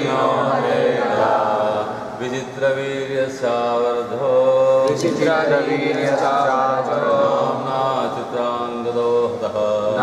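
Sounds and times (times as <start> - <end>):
person chanting verse: 0.0 - 10.0.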